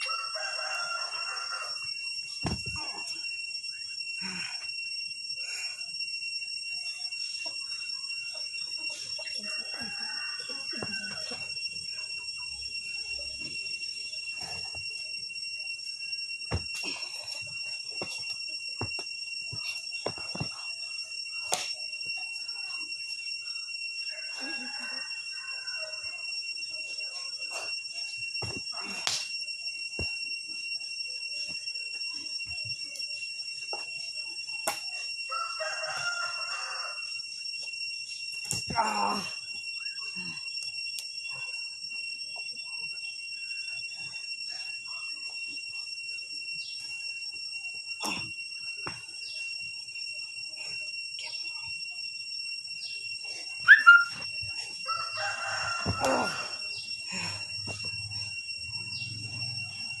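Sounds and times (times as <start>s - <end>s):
bodies thudding on ground: 2.4s - 2.9s, 16.5s - 20.7s
high-pitched whine: 52.8s - 60.0s.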